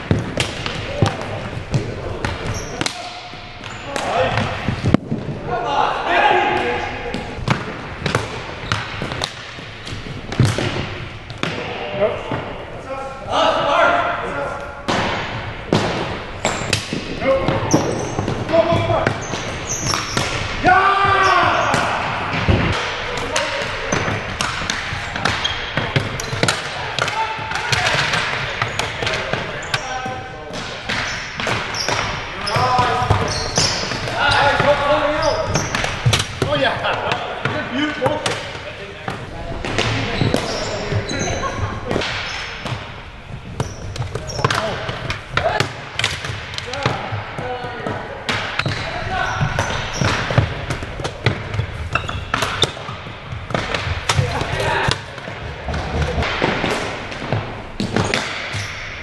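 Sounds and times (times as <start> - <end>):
hockey sticks clacking on ball: 0.0 - 5.4, 7.2 - 11.7, 14.6 - 59.0
players shouting: 5.5 - 7.4, 17.2 - 30.4, 31.7 - 42.2.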